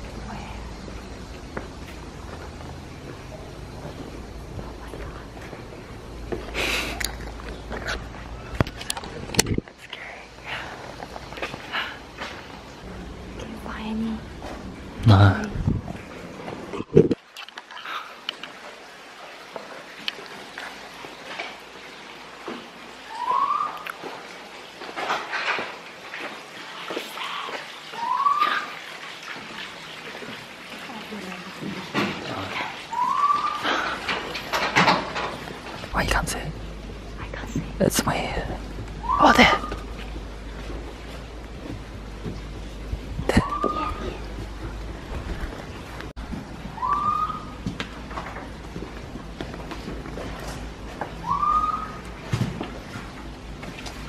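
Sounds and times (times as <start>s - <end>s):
hushed whispering: 4.6s - 5.6s, 9.8s - 10.9s, 13.4s - 14.2s
rising whistled calls: 23.0s - 23.9s, 27.9s - 28.8s, 32.9s - 34.0s, 39.0s - 39.9s, 43.3s - 44.2s, 46.7s - 47.6s, 51.1s - 52.1s
short rising whistle: 46.7s - 47.6s, 51.2s - 52.0s.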